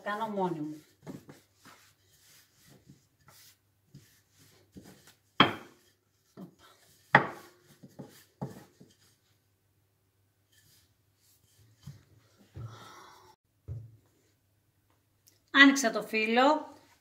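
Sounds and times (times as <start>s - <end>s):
rolling pin rubbing on dough: 0.0s - 9.4s
wooden rolling pin knocks: 5.4s - 5.8s.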